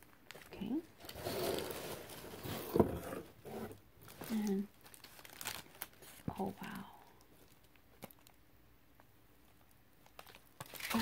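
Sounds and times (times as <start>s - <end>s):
plastic bag rustling: 0.0s - 6.5s, 10.1s - 11.0s.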